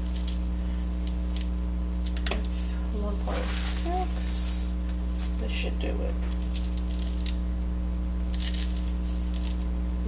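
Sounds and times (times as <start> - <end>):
plastic bag crinkling: 0.0 - 4.6, 6.2 - 7.6, 8.2 - 9.7
loud electrical hum: 0.0 - 10.0.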